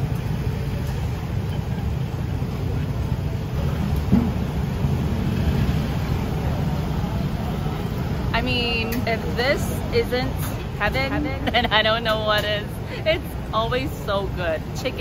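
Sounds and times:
city street traffic rumble: 0.0s - 15.0s.

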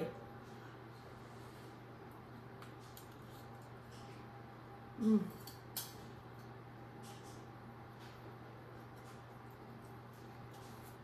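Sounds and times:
low room hum: 0.0s - 11.0s
woman saying mm: 5.0s - 5.4s.

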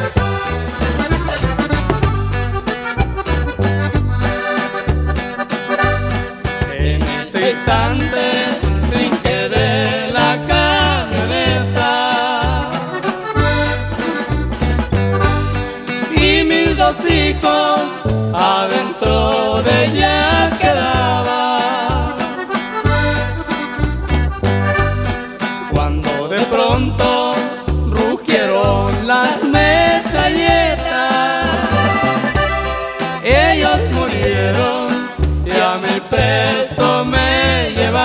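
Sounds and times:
steady drum beat: 0.0s - 21.3s, 28.7s - 38.0s
accordion melody: 0.0s - 38.0s
bass: 0.0s - 38.0s
strummed accompaniment: 0.0s - 38.0s.

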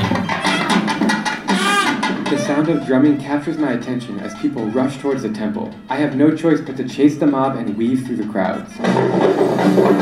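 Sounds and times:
barrel drums drumming: 0.0s - 10.0s.

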